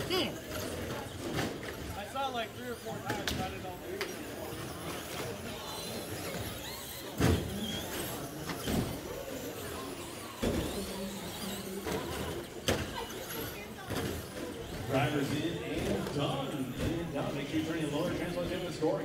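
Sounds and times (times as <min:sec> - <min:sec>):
background chatter: 0:00.0 - 0:19.0.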